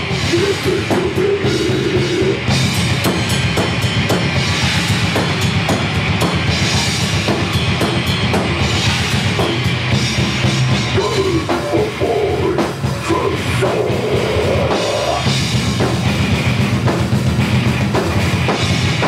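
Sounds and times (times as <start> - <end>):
death metal band playing: 0.0 - 19.0.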